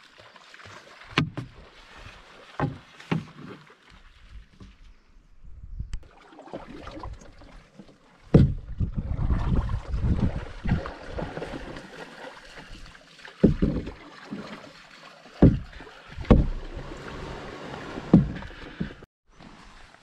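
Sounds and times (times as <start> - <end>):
paddle strokes splashing water: 0.0 - 5.0, 6.0 - 20.0
knocks inside canoe: 1.0 - 1.7, 2.5 - 3.6, 8.2 - 8.9, 13.4 - 14.5, 15.4 - 19.1.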